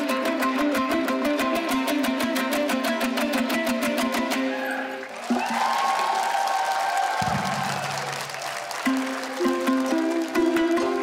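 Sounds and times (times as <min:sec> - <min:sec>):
dombra strumming: 0:00.0 - 0:04.6, 0:08.8 - 0:11.0
plucked string notes: 0:00.0 - 0:04.7, 0:08.8 - 0:11.0.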